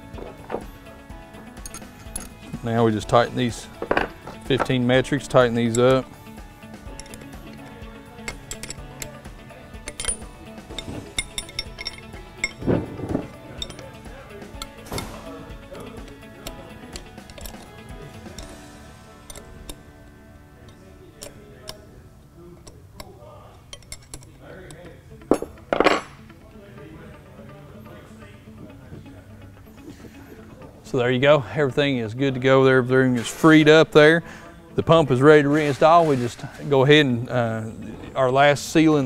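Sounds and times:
background music: 0:00.0 - 0:39.0
wrench clinking on steel: 0:00.2 - 0:18.6, 0:19.2 - 0:19.9, 0:20.6 - 0:21.9, 0:23.7 - 0:26.2.

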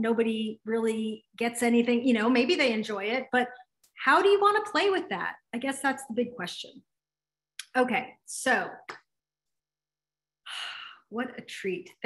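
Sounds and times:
woman speaking: 0:00.0 - 0:06.8
woman breathing: 0:10.4 - 0:11.1.

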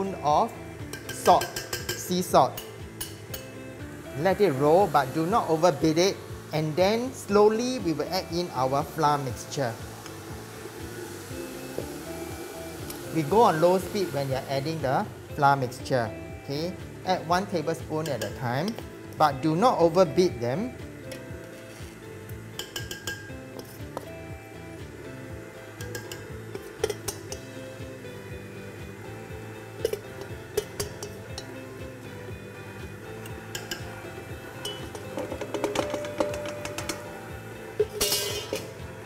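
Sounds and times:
background music: 0:00.0 - 0:39.0
metal spoon clinking on steel bowl: 0:00.9 - 0:02.0, 0:22.6 - 0:23.7, 0:25.8 - 0:27.5, 0:29.8 - 0:31.6, 0:33.2 - 0:33.9, 0:34.6 - 0:37.1, 0:37.8 - 0:38.7.

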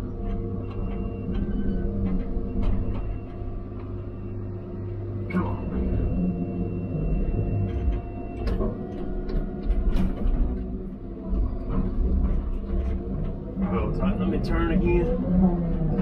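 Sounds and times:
diesel engine under load: 0:00.0 - 0:16.0.

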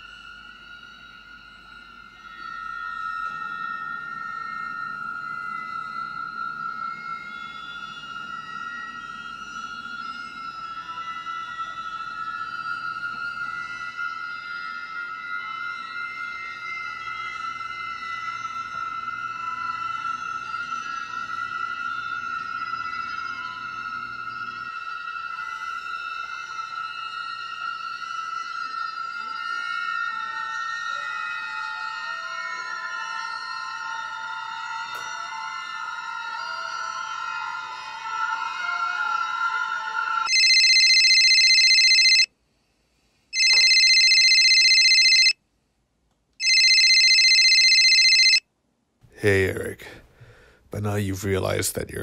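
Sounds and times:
eerie ambient music: 0:00.0 - 0:42.2
mobile phone ringtone: 0:40.3 - 0:42.3, 0:43.4 - 0:45.4, 0:46.4 - 0:48.4.

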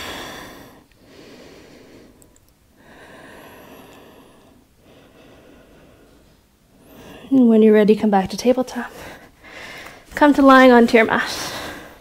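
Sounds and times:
woman breathing softly: 0:00.0 - 0:07.4, 0:08.8 - 0:10.1, 0:11.4 - 0:12.0.

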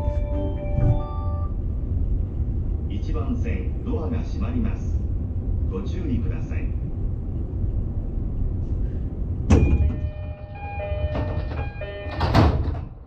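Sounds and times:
door chime: 0:00.0 - 0:01.5, 0:09.5 - 0:13.0
train doors closing with rush: 0:00.0 - 0:13.0.

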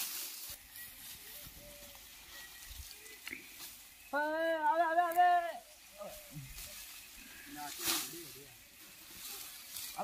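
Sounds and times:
dry straw rustling: 0:00.0 - 0:10.0.

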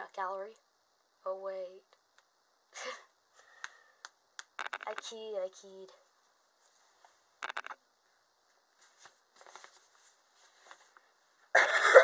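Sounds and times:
cloth rustling: 0:08.7 - 0:11.1
loud cough: 0:11.5 - 0:12.0.

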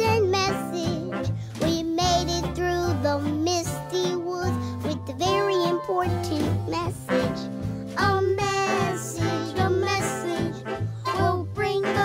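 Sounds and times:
bass line and backing instruments: 0:00.0 - 0:12.0
child singing: 0:00.0 - 0:12.0.

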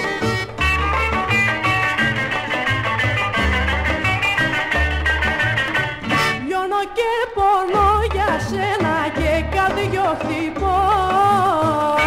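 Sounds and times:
band playing melody: 0:00.0 - 0:06.6, 0:07.7 - 0:12.0
woman singing: 0:06.3 - 0:12.0.

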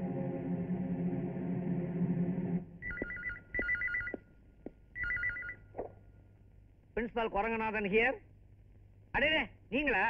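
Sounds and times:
telephone ringing: 0:02.8 - 0:04.3, 0:05.0 - 0:05.7.

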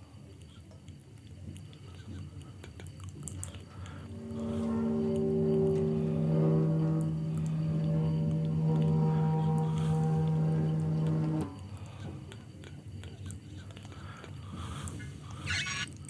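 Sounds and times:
sustained electronic drone chord: 0:03.7 - 0:12.0.

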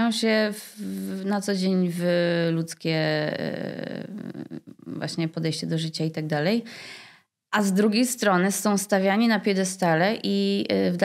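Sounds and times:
woman speaking: 0:00.0 - 0:07.0, 0:07.6 - 0:11.0
brief breath: 0:06.7 - 0:07.3.

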